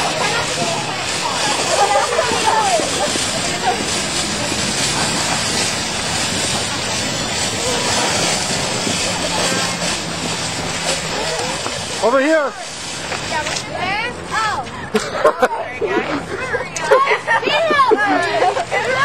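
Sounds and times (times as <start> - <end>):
steady rushing noise: 0.0 - 19.0
girls calling out: 0.1 - 4.0, 15.6 - 19.0.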